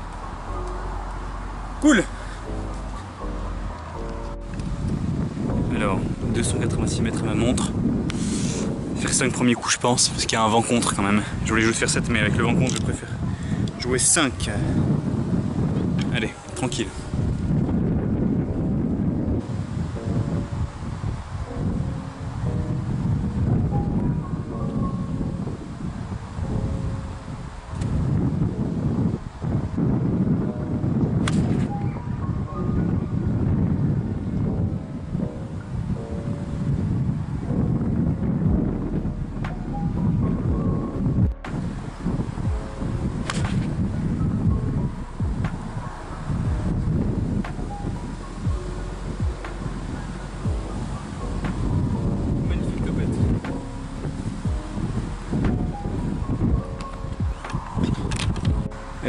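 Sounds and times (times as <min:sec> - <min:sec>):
background music: 0:00.0 - 0:59.0
wind buffeting microphone: 0:00.0 - 0:59.0.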